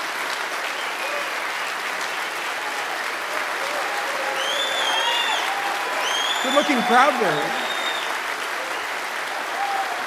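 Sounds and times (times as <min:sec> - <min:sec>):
crowd applauding: 0:00.0 - 0:10.0
high held whistle: 0:07.5 - 0:08.1.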